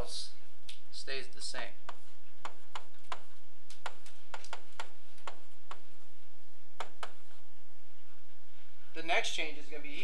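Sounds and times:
stylus tapping on tablet screen: 1.8 - 6.0, 6.8 - 7.4.

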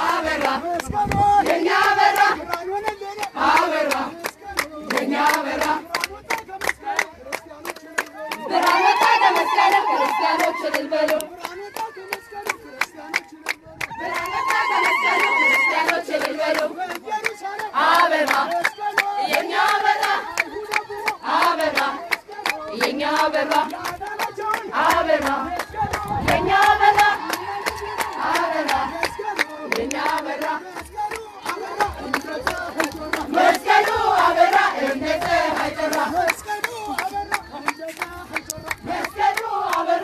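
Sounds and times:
crowd singing and chanting: 0.0 - 40.0
rhythmic hand clapping: 0.0 - 40.0.

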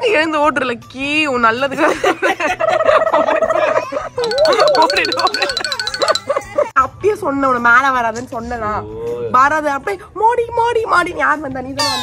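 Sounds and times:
music with fast ticking beat: 4.2 - 6.6.

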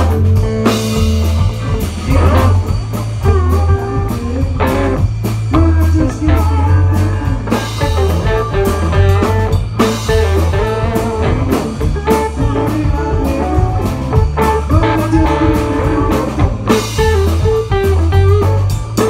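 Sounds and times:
bass guitar: 0.0 - 19.0
drum kit: 0.0 - 19.0
electric guitar lead lines: 0.0 - 19.0.

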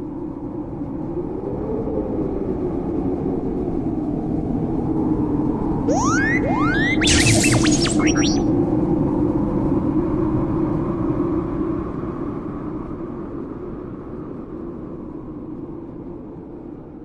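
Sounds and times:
electronic beeps and whistles: 5.9 - 8.5.

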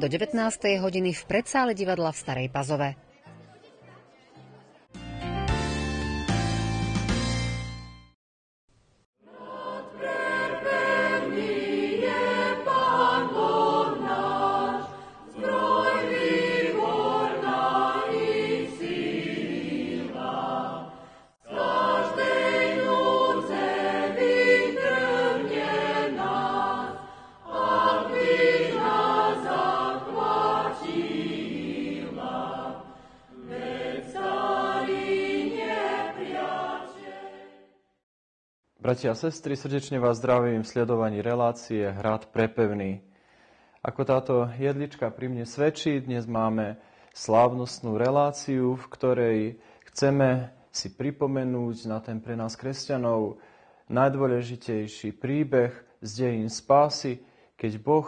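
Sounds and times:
choir singing sacred music: 9.2 - 37.8.

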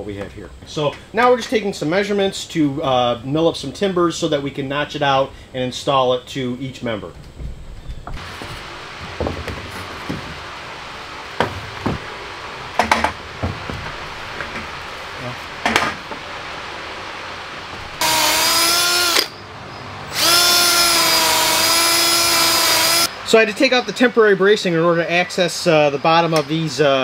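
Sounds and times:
cordless drill drilling into timber: 18.0 - 19.3, 20.1 - 23.1.

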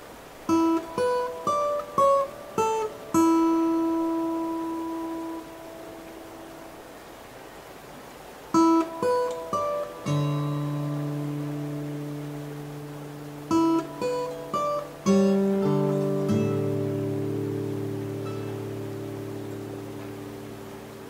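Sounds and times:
plucked guitar notes: 0.5 - 6.5, 8.6 - 21.0
guitar chord ringing: 0.5 - 6.7, 8.6 - 21.0.

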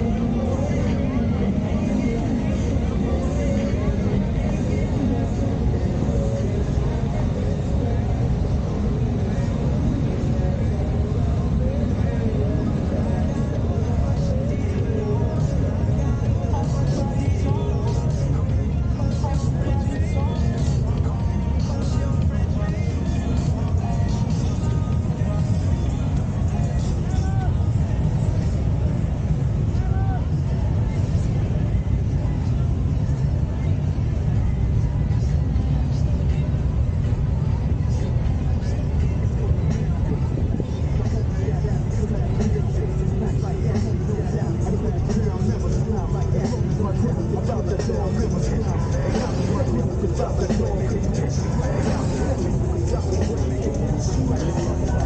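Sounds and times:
engines rumbling: 0.0 - 55.0
music: 0.0 - 55.0
people's voices: 0.0 - 55.0.

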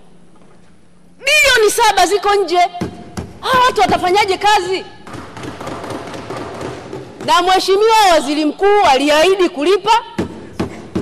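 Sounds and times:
people thumping wooden desks: 2.8 - 4.4, 5.0 - 8.0, 10.2 - 11.0.

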